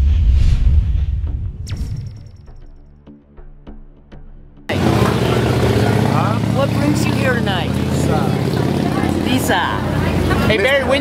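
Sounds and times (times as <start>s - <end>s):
indistinct voices talking: 4.7s - 11.0s
low engine hum: 4.7s - 11.0s.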